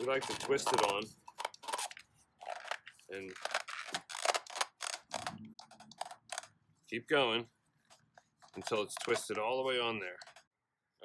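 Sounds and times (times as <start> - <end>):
filter crackling and crunching: 0.0 - 6.6, 8.4 - 10.5.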